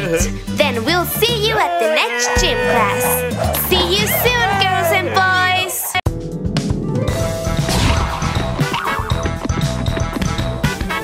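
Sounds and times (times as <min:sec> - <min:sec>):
upbeat music with drums: 0:00.0 - 0:01.4, 0:05.4 - 0:11.0.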